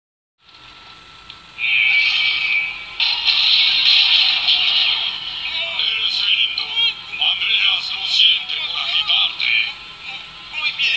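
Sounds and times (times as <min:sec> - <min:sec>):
cartoon music and voices from tv: 0:00.8 - 0:10.9.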